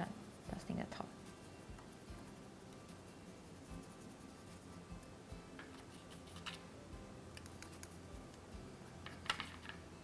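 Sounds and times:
paintbrush ticks and handling: 0.0 - 6.7, 7.3 - 8.5.

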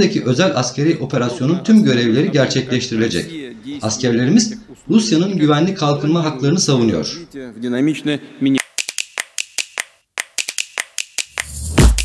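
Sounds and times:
man's voice: 0.0 - 8.6
sharp clicks: 8.6 - 11.7
electronic music with heavy beat: 8.6 - 12.0.

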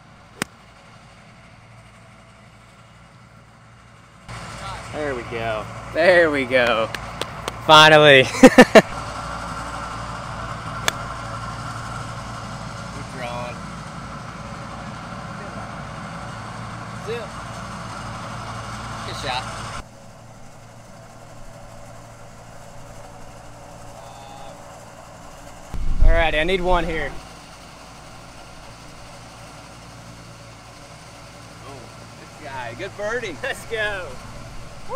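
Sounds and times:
steady low hum: 0.0 - 34.9
golf club striking ball: 0.4 - 0.6, 10.7 - 11.3.

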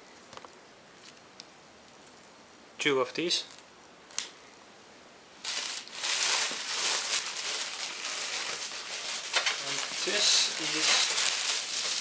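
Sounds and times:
plastic bag rustling and crinkling: 5.4 - 12.0.

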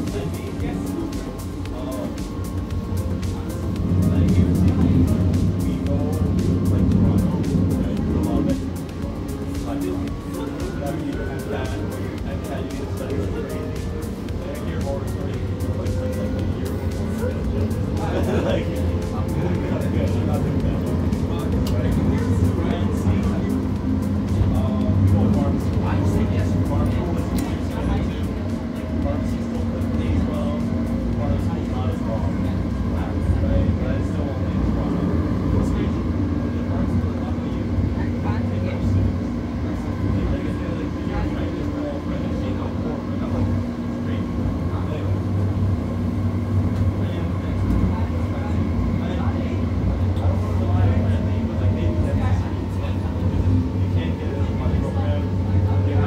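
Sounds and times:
light rail car running rumble: 0.0 - 56.0.

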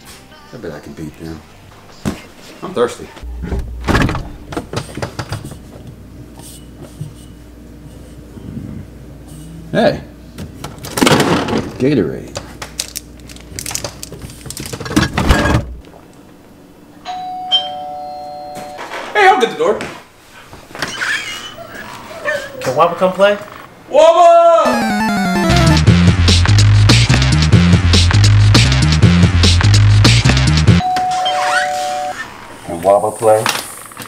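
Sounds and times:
doorbell ding-dong chime: 17.1 - 18.8, 30.8 - 32.2.

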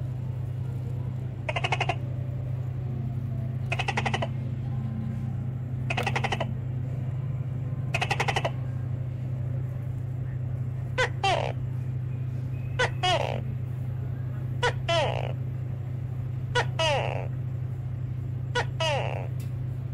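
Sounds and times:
steady low hum: 0.0 - 19.9
rattling animal call: 1.5 - 2.2, 3.6 - 4.5, 5.8 - 6.7, 7.9 - 8.7, 10.8 - 11.6, 12.7 - 13.6, 14.6 - 15.5, 16.5 - 17.4, 18.5 - 19.4.

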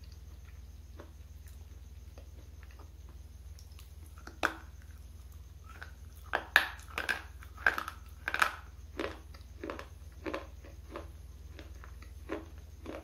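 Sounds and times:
bar crunching as chewed: 5.6 - 13.0.

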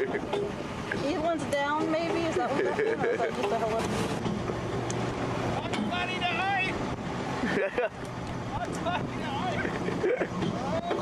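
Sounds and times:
motorboat engine hum: 0.0 - 11.0
people shouting excitedly: 5.9 - 6.8.

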